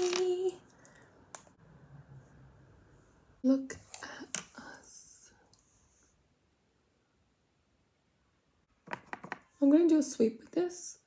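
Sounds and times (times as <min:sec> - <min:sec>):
woman whispering: 0:03.5 - 0:05.6.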